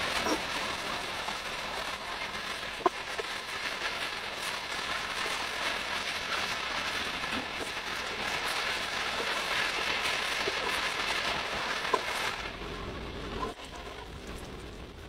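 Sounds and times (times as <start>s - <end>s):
food sizzling in a pan: 0.0s - 14.9s
spatula stirring: 0.1s - 14.3s.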